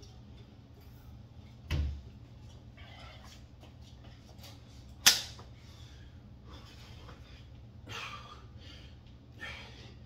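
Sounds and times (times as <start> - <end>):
soft breathing: 5.5 - 10.0.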